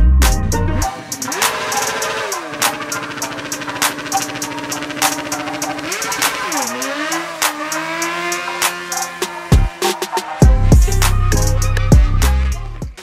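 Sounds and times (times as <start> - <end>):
hip-hop beat: 0.0 - 13.0
motorcycle engine revving: 0.2 - 13.0.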